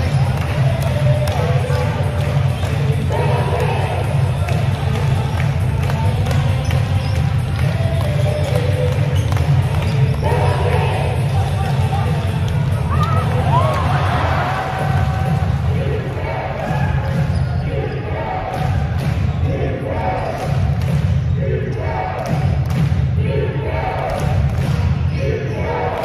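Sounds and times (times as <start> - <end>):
sharp claps: 0.0 - 10.2, 20.4 - 21.2, 22.2 - 23.1, 24.0 - 25.0
steady low crowd rumble: 0.0 - 26.0
crowd chanting: 12.8 - 20.5.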